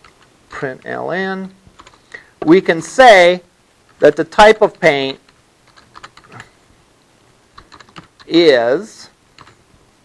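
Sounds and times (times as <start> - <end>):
keyboard keystrokes: 5.7 - 6.5, 7.6 - 8.3, 9.4 - 9.6.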